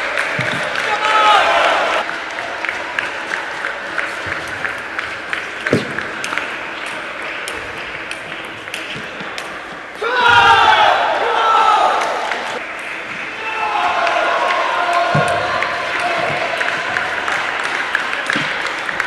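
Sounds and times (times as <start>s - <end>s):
loud voices: 0.0s - 19.0s.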